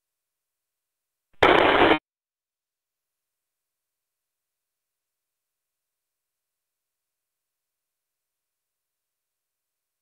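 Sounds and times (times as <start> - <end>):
radio static burst: 1.4 - 2.0.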